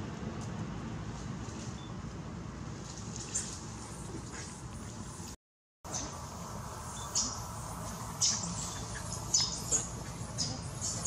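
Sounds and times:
steady background hiss: 2.2 - 11.0.

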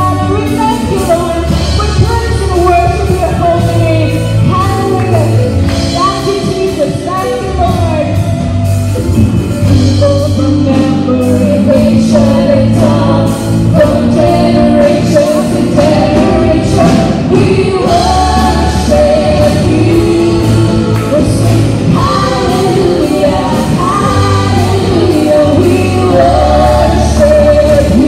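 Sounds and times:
woman singing: 0.0 - 8.2, 9.7 - 28.0
acoustic guitar: 0.0 - 28.0
keyboard: 0.0 - 28.0
steady drum beat: 0.0 - 28.0
electric guitar: 7.1 - 28.0.

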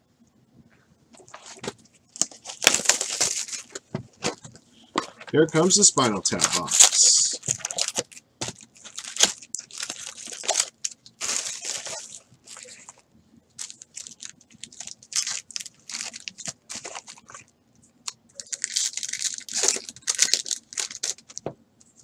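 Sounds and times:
card packs crinkling and rustling: 1.2 - 13.0, 13.6 - 17.5, 18.3 - 21.6.

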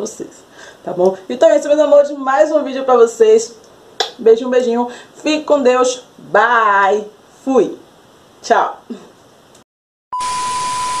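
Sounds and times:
television static hiss: 0.0 - 9.6
steady high beep: 10.1 - 11.0.

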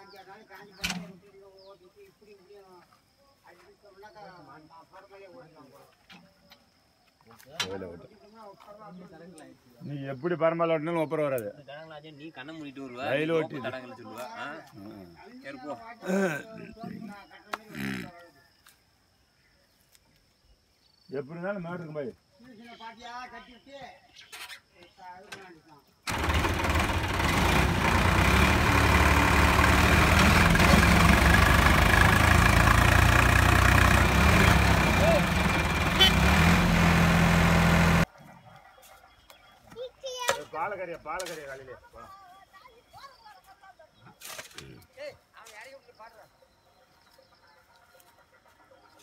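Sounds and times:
men talking: 7.4 - 18.1, 34.5 - 35.9
diesel tractor engines running: 26.1 - 38.1.

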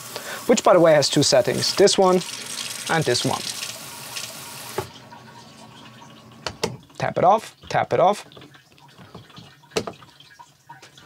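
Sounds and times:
tap water streaming into sink: 0.0 - 11.0.

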